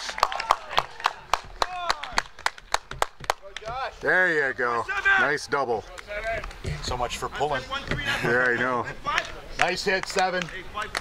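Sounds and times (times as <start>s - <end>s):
spectators clapping: 0.0s - 4.2s, 8.4s - 11.0s.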